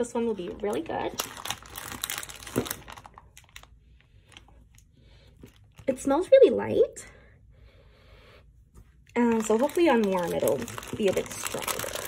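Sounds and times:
plastic bag crinkling: 0.0s - 4.8s, 9.1s - 12.0s.

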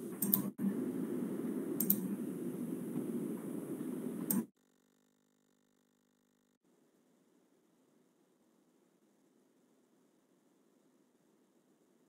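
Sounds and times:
microphone hiss: 0.0s - 4.5s
mouse clicks: 0.2s - 0.5s, 1.8s - 2.1s.

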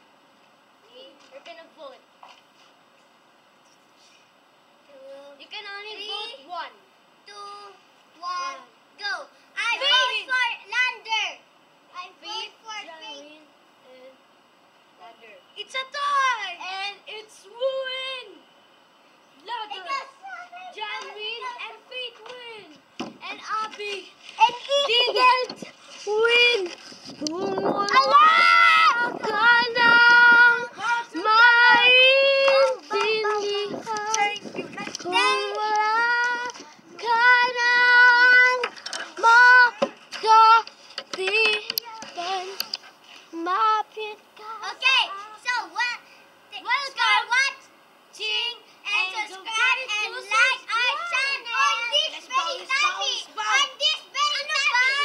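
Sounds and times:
girl singing unaccompanied: 19.6s - 46.0s
young children chattering: 48.5s - 55.0s.

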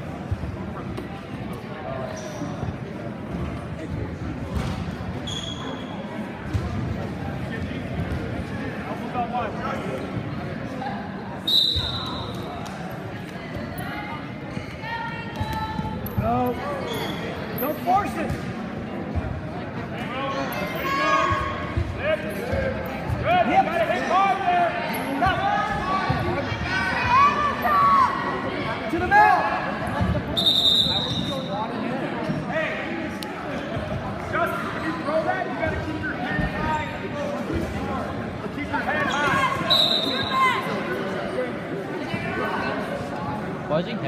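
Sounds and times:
referee's whistle: 11.4s - 12.4s, 30.4s - 31.5s, 39.1s - 40.6s.

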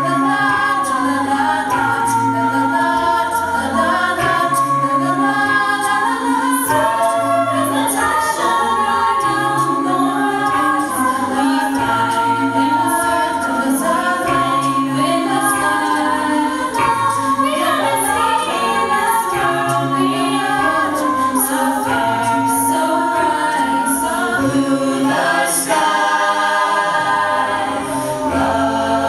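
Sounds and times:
a cappella group singing: 0.0s - 29.0s.

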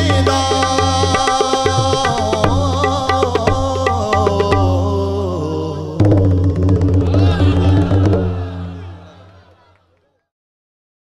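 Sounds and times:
drumming: 0.0s - 5.0s, 6.0s - 9.4s
qawwali music: 0.0s - 10.0s.

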